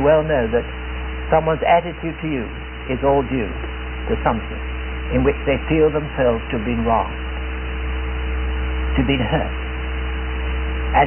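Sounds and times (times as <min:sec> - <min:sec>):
faint high steady tones: 0:00.0 - 0:11.0
mains hum: 0:00.0 - 0:11.0
recording hiss: 0:00.0 - 0:11.0.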